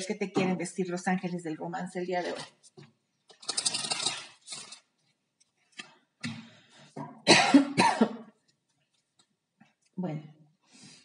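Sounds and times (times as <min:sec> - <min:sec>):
papery card rustle: 0:03.3 - 0:05.9
woman coughing: 0:07.2 - 0:08.3.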